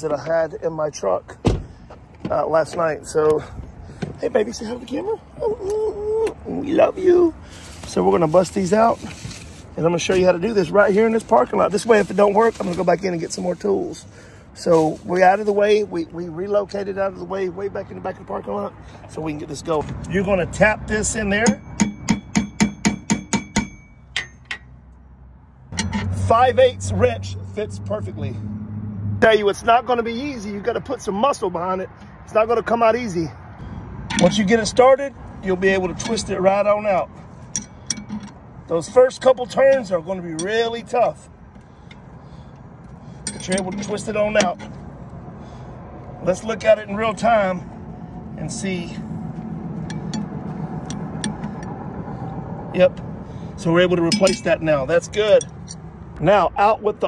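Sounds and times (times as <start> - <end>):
hammer striking metal: 21.4 - 24.8, 25.7 - 26.3.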